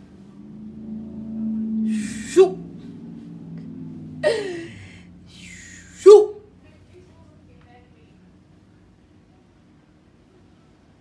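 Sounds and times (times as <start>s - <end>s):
low steady hum: 0.0s - 11.0s
woman's breathy vocal sounds: 4.2s - 6.1s.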